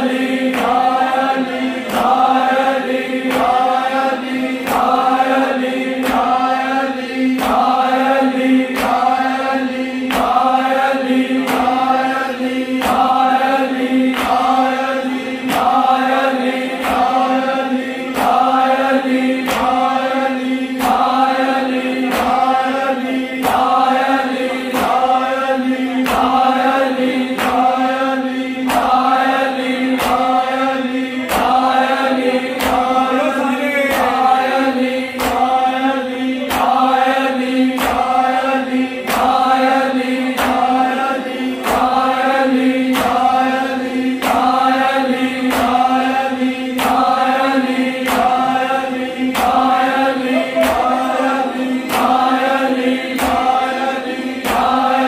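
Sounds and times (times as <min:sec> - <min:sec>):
men chanting in rhythm: 0:00.0 - 0:55.0.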